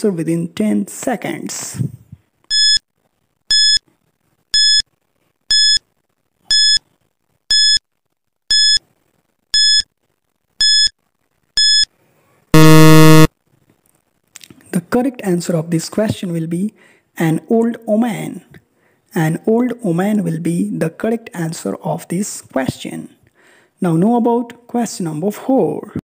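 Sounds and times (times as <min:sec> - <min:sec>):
low buzzer: 0:12.6 - 0:13.3
short high electronic beeps: 0:12.6 - 0:13.3.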